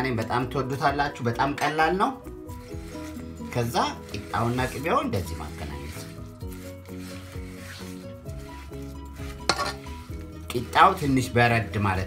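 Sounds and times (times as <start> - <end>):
background music: 0.0 - 12.0
oil sizzling: 2.3 - 11.1
metal spoon scraping a pot: 2.5 - 11.0.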